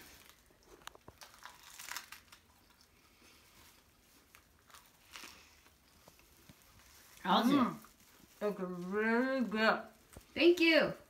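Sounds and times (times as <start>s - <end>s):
biting and chewing: 0.0s - 7.2s
plastic wrap crinkling: 0.0s - 11.0s.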